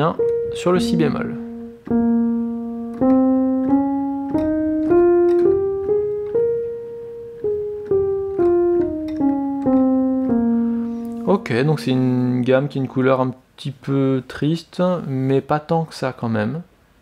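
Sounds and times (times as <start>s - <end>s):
piano scale single notes: 0.0s - 12.9s.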